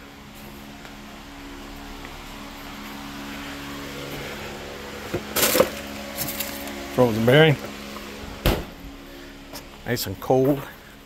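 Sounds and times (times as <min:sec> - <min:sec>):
steady electric hum: 0:00.0 - 0:11.0
freezer door clattering open: 0:05.1 - 0:06.6.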